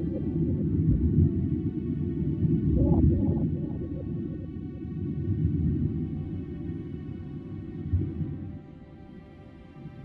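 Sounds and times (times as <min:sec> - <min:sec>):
muffled underwater rumble: 0:00.0 - 0:10.0
steady low drone: 0:00.0 - 0:10.0
bubbles gurgling: 0:02.7 - 0:04.5.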